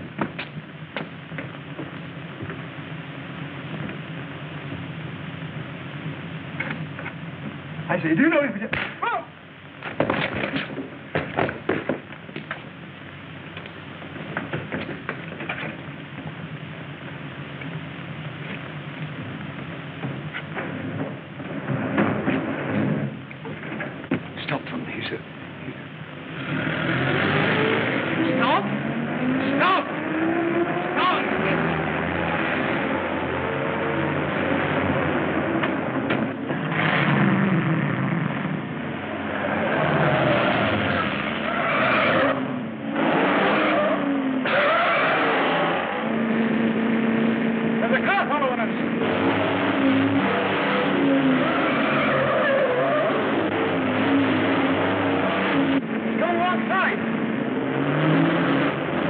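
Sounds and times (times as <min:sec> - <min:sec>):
car engines revving: 0:09.6 - 0:59.0
tyres squealing and skidding: 0:39.3 - 0:46.1, 0:49.2 - 0:55.5.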